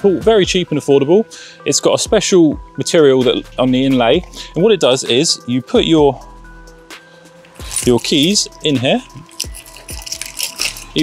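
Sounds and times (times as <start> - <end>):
keys clinking: 7.4 - 11.0.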